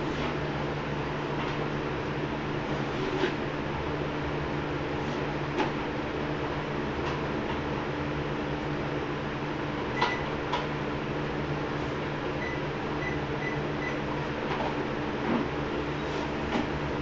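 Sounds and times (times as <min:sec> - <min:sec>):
treadmill motor hum: 0:00.0 - 0:17.0.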